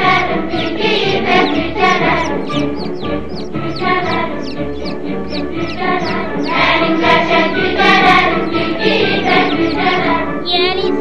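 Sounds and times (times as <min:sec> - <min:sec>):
children's song: 0:00.0 - 0:11.0
instrumental backing: 0:00.0 - 0:11.0.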